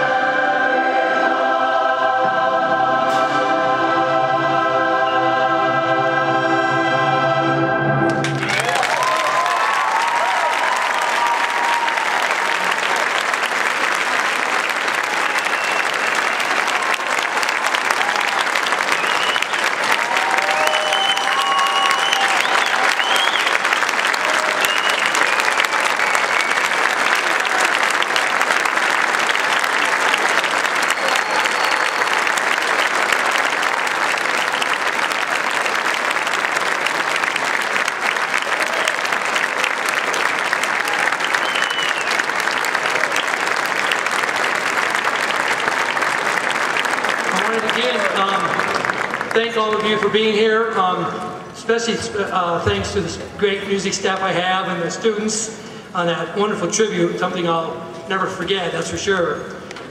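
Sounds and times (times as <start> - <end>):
crowd clapping: 8.1 - 51.5
crowd shouts: 8.4 - 13.0, 19.8 - 23.4
whistles: 15.2 - 16.3, 18.9 - 23.7, 24.4 - 26.8, 30.8 - 32.4, 41.1 - 42.3, 43.2 - 44.1.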